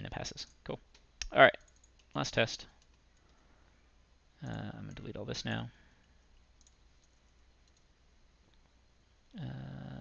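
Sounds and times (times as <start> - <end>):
computer keyboard keystrokes: 1.6 - 2.2, 6.6 - 7.8
man saying uhh: 9.3 - 10.0.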